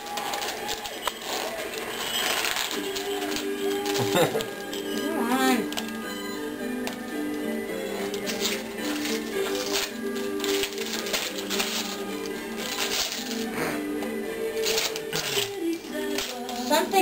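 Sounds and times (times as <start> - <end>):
wrapping paper crinkling and tearing: 0.0 - 5.0, 8.0 - 13.6, 14.4 - 17.0
music with held notes: 0.0 - 17.0.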